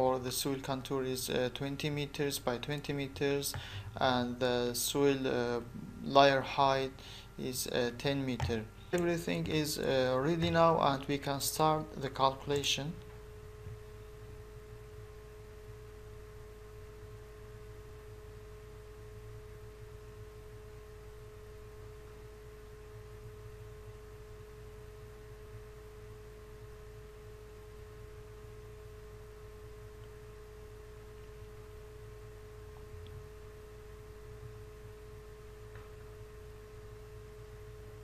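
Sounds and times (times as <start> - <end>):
constant mid-pitched tone: 0.0 - 38.0
steady background hum: 0.0 - 38.0.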